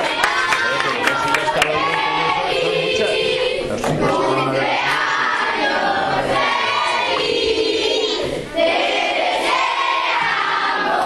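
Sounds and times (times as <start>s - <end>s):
young voices singing in unison: 0.0s - 11.0s.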